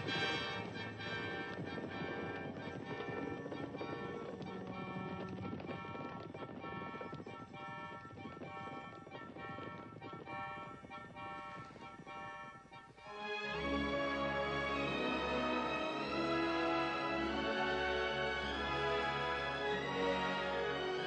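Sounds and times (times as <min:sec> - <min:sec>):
film score music: 0:00.0 - 0:21.0
horse hoofbeats: 0:00.0 - 0:21.0.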